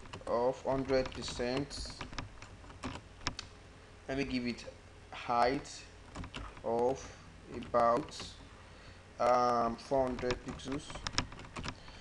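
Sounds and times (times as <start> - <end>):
sharp computer clicks: 0.0 - 3.6, 6.1 - 8.4, 9.2 - 12.0.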